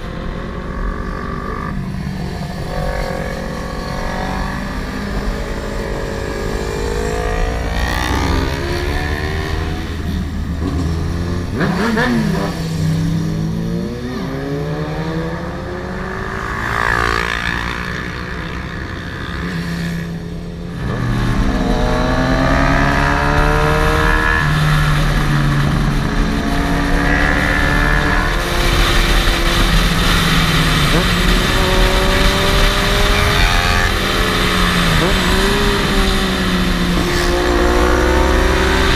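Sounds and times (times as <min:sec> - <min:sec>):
motorcycle engine revving: 0:00.0 - 0:38.9
wind noise on microphone: 0:00.0 - 0:38.9.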